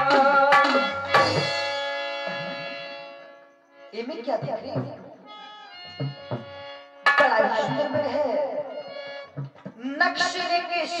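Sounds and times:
harmonium: 0.0 - 11.0
hand drum strokes: 9.3 - 9.8.

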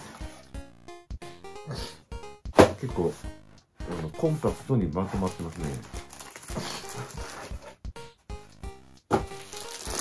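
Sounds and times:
background music with soft thumps: 0.0 - 10.0.

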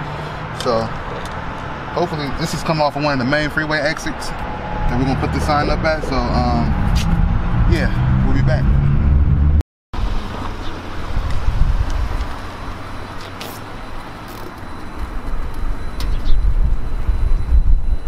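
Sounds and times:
cars passing on street: 0.0 - 18.0
wind rumbling on microphone: 4.1 - 13.1, 14.8 - 18.0.

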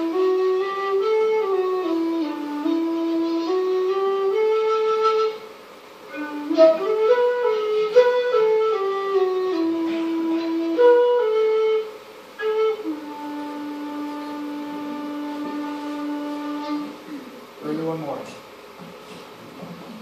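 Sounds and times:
solo flute playing folk melody: 0.0 - 5.5, 6.1 - 17.1.

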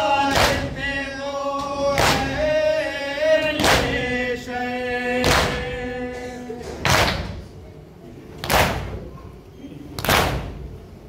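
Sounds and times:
men's chorus chanting: 0.0 - 7.2.

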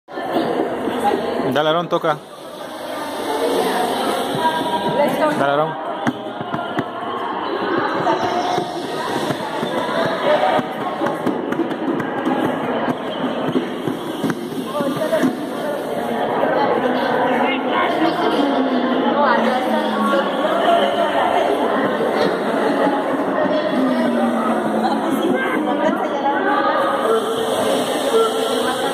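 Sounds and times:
people talking: 0.1 - 28.9.

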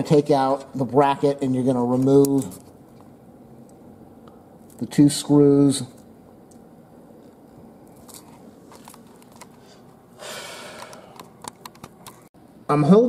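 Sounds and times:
sharp clicks and knocks: 10.8 - 12.3.

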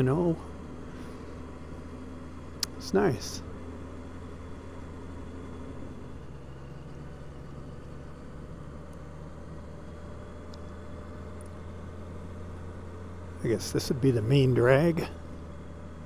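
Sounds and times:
motorcycle engine humming: 0.0 - 16.0
road noise: 0.0 - 16.0.

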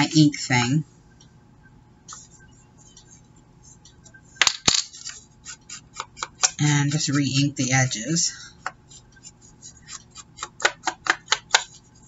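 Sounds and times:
paper and table rustling: 2.1 - 7.5, 8.7 - 12.0.

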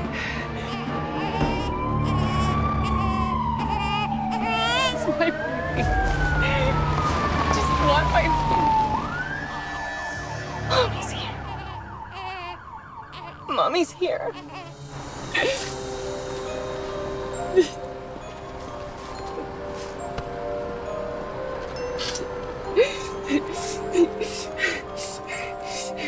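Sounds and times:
police siren wailing: 0.0 - 14.9.

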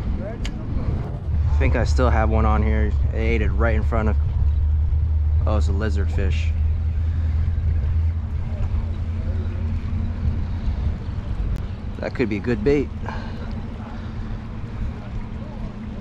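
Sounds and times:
boat engine droning: 0.0 - 16.0.

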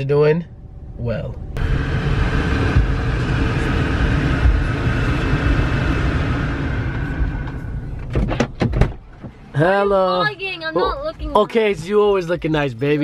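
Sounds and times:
car road and engine noise: 0.0 - 13.0
car door opening clicks: 8.0 - 9.4.

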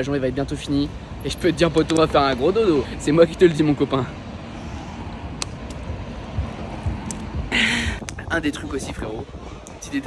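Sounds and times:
distant traffic rumble: 0.0 - 10.0.

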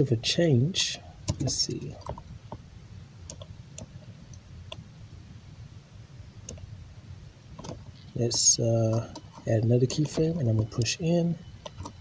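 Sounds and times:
computer mouse clicks: 3.3 - 4.8, 11.6 - 12.0.

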